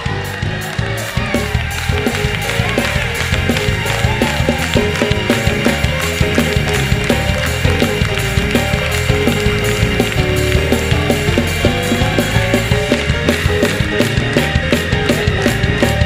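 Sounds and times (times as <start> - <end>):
drums quick steady beat: 0.0 - 16.0
heavy bass line: 0.0 - 16.0
live gospel band playing: 0.0 - 16.0.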